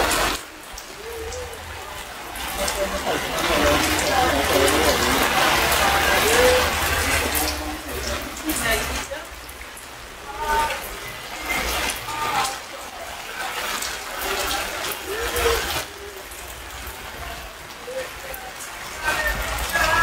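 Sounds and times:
indistinct voices talking: 0.0s - 20.0s
rain falling steadily: 0.0s - 20.0s.

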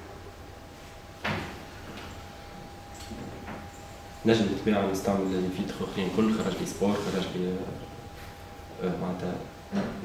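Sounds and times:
thin steady hum: 0.0s - 10.0s.

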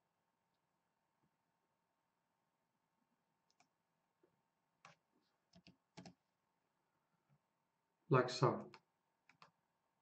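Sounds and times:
computer keyboard and mouse clicks: 3.5s - 3.7s, 4.8s - 6.2s, 8.6s - 9.6s.

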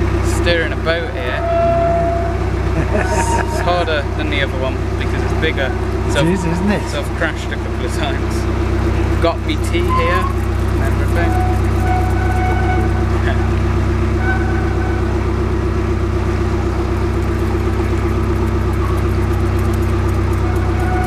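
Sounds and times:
boat engine running: 0.0s - 21.0s.

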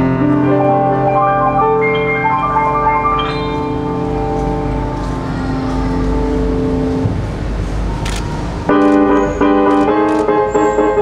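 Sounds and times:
grand piano playing: 0.0s - 7.0s, 8.7s - 11.0s.

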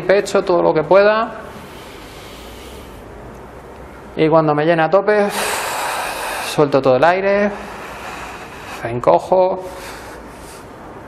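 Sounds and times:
person breathing in deeply: 1.4s - 3.2s, 5.3s - 6.7s, 7.4s - 8.9s, 9.6s - 10.8s.

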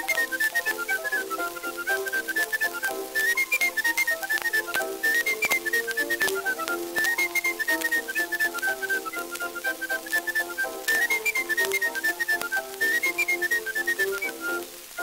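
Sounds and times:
lively instrumental tune: 0.0s - 15.0s
record clicks and crackle: 0.0s - 15.0s.

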